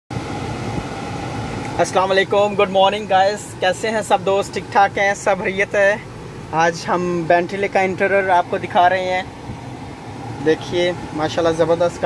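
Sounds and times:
air conditioning hum: 0.1 - 12.0
man speaking: 1.8 - 9.3, 10.4 - 12.0.

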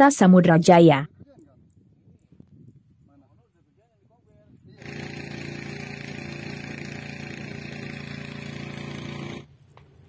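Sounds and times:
small engine running: 4.7 - 9.5.

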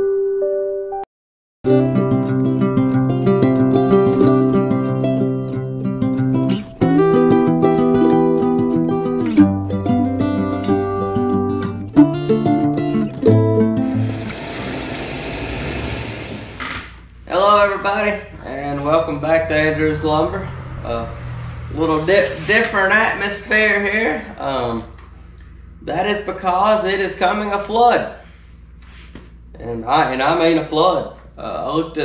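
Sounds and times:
background music of held notes: 1.7 - 14.3
hissy wash: 13.8 - 16.7.

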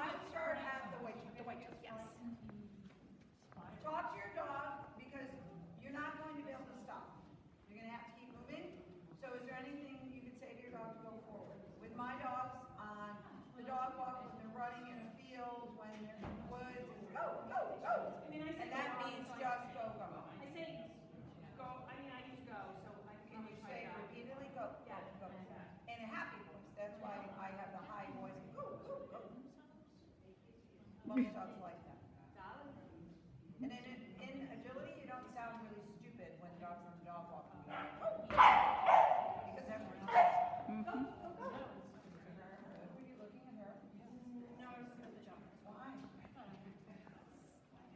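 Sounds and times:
indistinct talking: 37.7 - 41.8
dog yipping: 37.8 - 39.4, 40.1 - 40.7.

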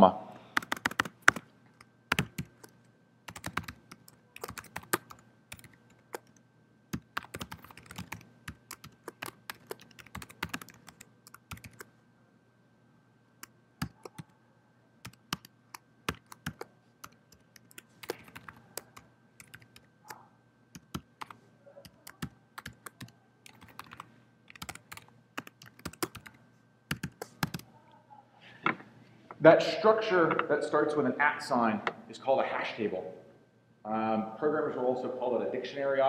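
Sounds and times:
typing on computer keyboard: 0.6 - 6.4, 7.0 - 11.9, 13.8 - 14.3, 15.0 - 19.9, 20.8 - 27.7.

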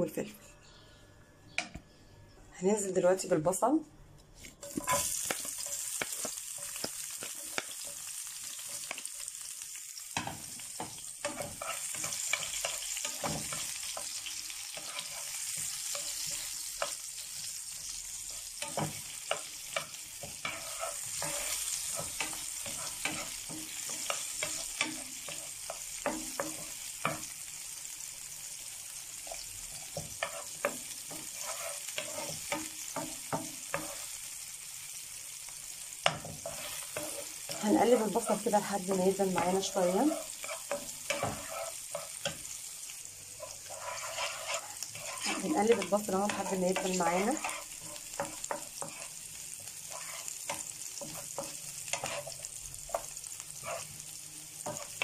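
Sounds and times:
spatula scraping a pan: 4.4 - 9.1, 10.2 - 27.4, 29.2 - 34.2, 36.0 - 42.8, 43.4 - 55.0
onions sizzling in oil: 4.4 - 55.0.

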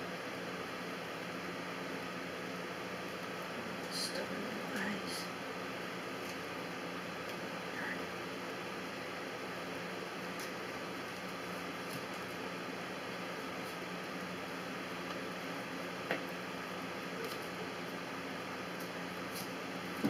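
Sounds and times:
room noise hiss and hum: 0.0 - 20.0.

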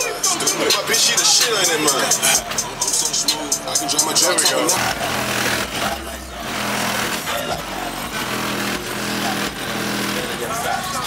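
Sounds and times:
hip-hop through car sound system: 0.0 - 11.0.

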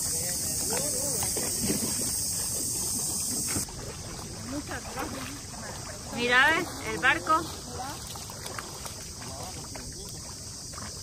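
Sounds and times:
faint voices: 0.0 - 3.3
high-pitched insect drone: 0.0 - 3.6.

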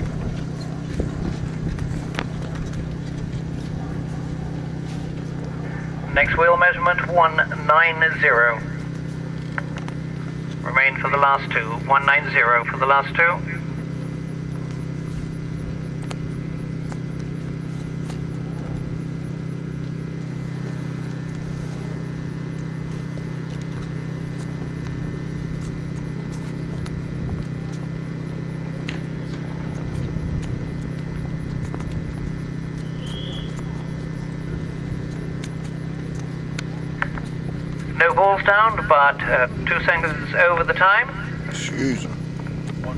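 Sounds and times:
horse hoofbeats on grass: 0.0 - 6.6, 13.7 - 40.2
steady low hum: 0.0 - 42.9.

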